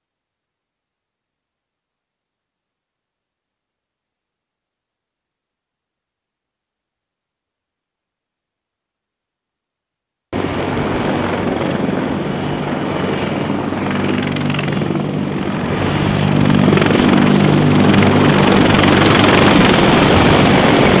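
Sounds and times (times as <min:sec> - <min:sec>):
helicopter engines and rotors: 0:10.4 - 0:21.0.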